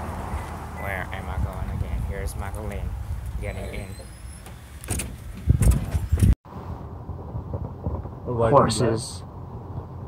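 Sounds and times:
wind on microphone: 0:05.0 - 0:10.0.

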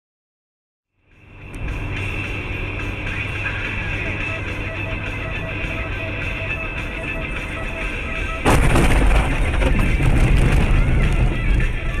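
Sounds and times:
background music: 0:01.0 - 0:12.0
loud rumbling noise: 0:06.8 - 0:12.0
car crash: 0:08.3 - 0:12.0.

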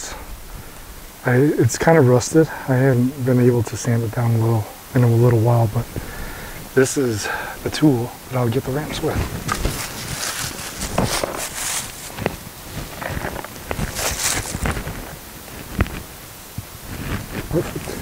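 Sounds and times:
rustling of dry leaves: 0:00.0 - 0:18.0.

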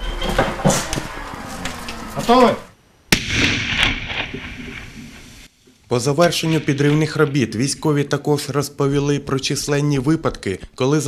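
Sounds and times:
rolling rumble of explosion: 0:03.1 - 0:05.5.

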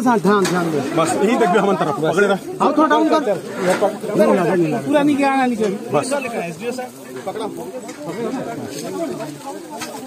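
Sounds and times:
men talking excitedly: 0:00.0 - 0:10.0.

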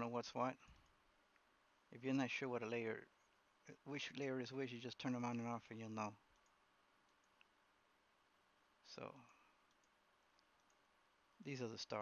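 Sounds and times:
faint computer mouse clicks: 0:06.3 - 0:07.6, 0:09.2 - 0:10.8.

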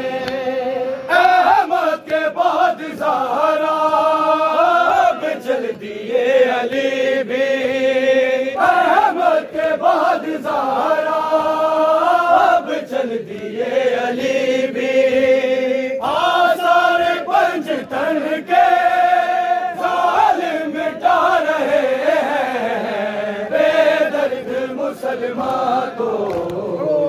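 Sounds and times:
men chanting in unison: 0:00.0 - 0:27.0.

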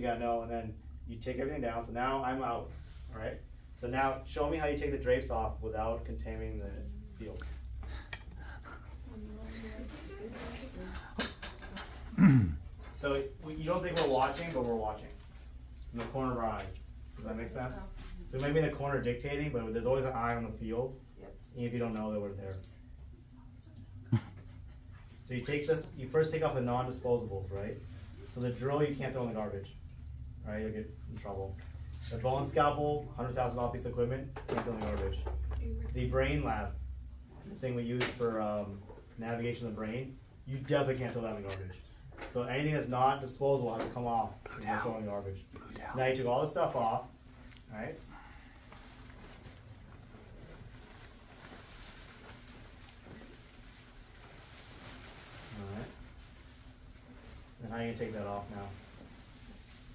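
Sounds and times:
faint room murmur: 0:00.0 - 0:59.9
surgical drapes rustling: 0:09.0 - 0:12.1, 0:37.6 - 0:59.9.

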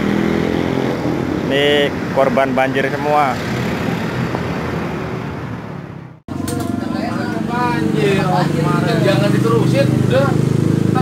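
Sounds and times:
workshop noise: 0:00.0 - 0:11.0
people talking: 0:01.5 - 0:03.4, 0:06.4 - 0:10.4.

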